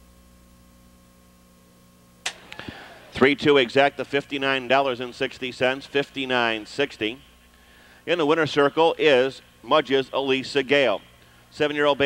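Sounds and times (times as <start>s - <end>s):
low electrical hum: 0.0s - 12.0s
microphone hiss: 0.0s - 12.0s
microphone switch click: 2.2s - 2.8s.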